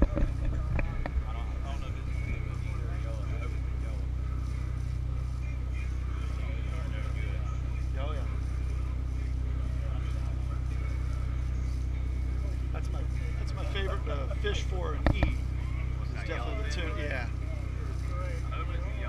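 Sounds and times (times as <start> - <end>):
boat engine droning: 0.0 - 19.0
faint voices: 0.0 - 19.0.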